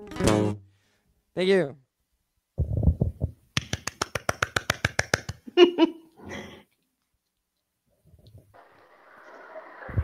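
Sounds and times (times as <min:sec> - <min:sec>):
hand clapping: 0:03.6 - 0:05.5.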